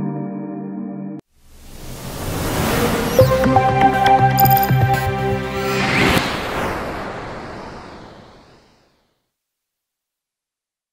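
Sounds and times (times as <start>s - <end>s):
whoosh and hit effect: 5.6s - 9.0s.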